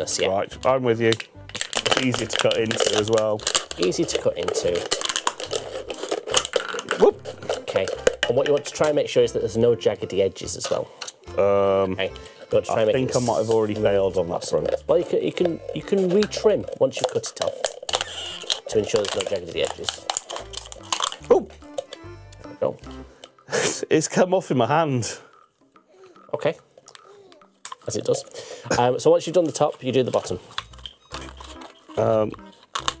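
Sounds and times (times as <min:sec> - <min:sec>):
person speaking: 0:00.0 - 0:05.8, 0:06.9 - 0:20.1, 0:31.9 - 0:32.6
scissors cutting plastic bottle: 0:01.1 - 0:09.0, 0:13.1 - 0:22.5, 0:29.3 - 0:33.0.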